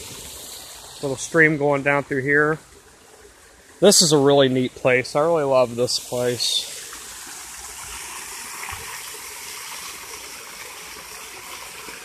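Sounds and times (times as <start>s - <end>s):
small waterfall splashing on stones: 0.0s - 12.0s.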